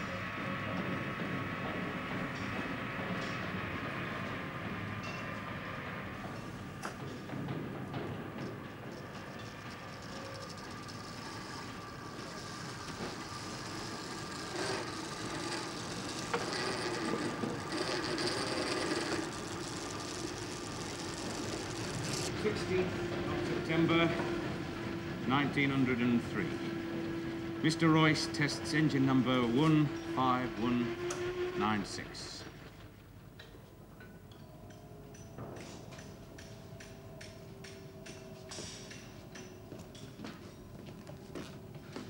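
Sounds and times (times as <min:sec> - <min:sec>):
machine tools whirring and clattering: 0:00.0 - 0:42.0.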